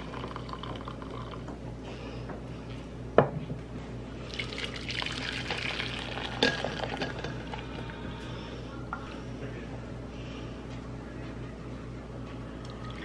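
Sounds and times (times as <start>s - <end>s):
liquid pouring: 0.0s - 1.5s, 4.3s - 7.9s.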